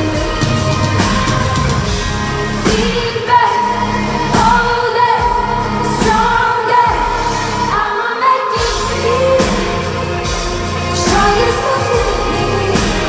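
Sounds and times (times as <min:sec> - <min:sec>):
live pop band: 0:00.0 - 0:13.0
woman singing: 0:00.0 - 0:13.0.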